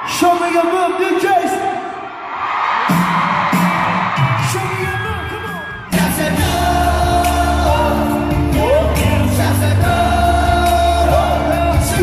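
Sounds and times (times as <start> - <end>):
pop vocals singing: 4.7 - 12.0
bass line and beat: 5.9 - 12.0.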